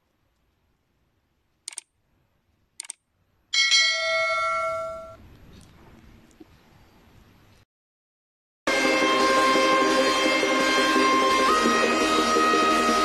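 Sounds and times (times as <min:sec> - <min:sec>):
double clicks: 0:01.7 - 0:01.9, 0:02.8 - 0:03.0
notification bell ding: 0:03.6 - 0:05.2.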